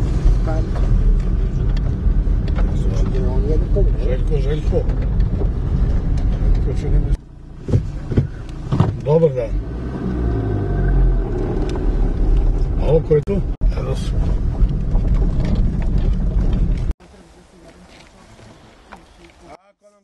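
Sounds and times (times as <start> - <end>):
car rumbling on dirt road: 0.0 - 19.6.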